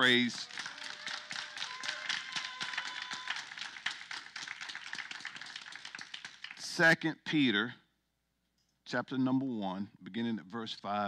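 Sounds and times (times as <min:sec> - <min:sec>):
congregation clapping: 0:00.0 - 0:06.9.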